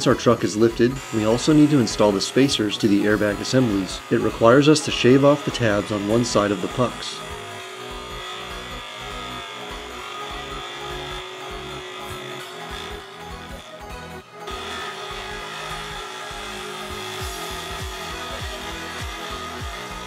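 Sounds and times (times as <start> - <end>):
background music: 0.0 - 20.0
bench grinder grinding plastic: 0.0 - 20.0.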